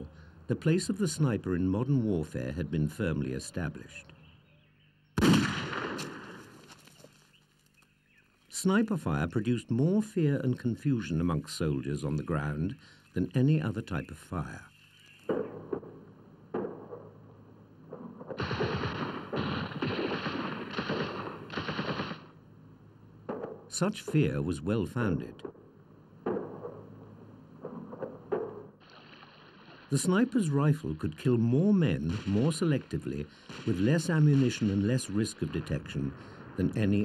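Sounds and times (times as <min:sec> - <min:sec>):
rifle shot with echo: 0:05.2 - 0:06.6, 0:15.3 - 0:22.4, 0:23.3 - 0:23.7, 0:25.4 - 0:28.7, 0:32.0 - 0:36.8
automatic gunfire bursts: 0:18.0 - 0:22.4, 0:33.4 - 0:34.9.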